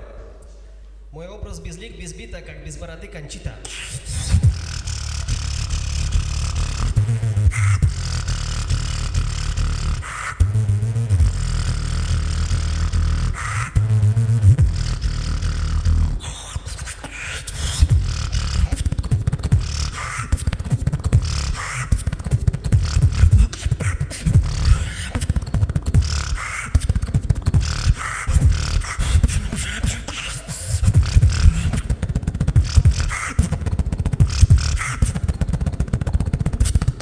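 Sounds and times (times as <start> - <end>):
beatboxing through microphone: 0.0 - 37.0.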